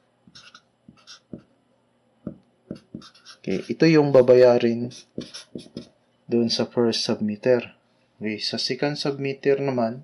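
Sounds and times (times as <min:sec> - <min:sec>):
marker scratching on paper: 0:00.3 - 0:01.5, 0:02.7 - 0:05.9.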